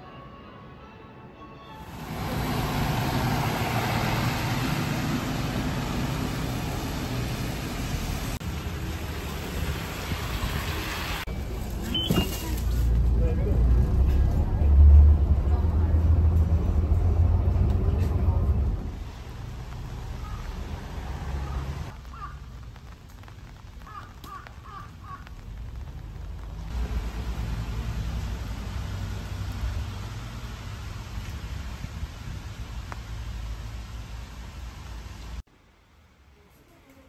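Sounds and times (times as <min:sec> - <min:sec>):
bus engine rumbling: 0:01.8 - 0:21.9, 0:25.9 - 0:35.5
traffic on wet road: 0:01.8 - 0:35.5
rain hissing: 0:01.9 - 0:13.1, 0:13.7 - 0:36.1.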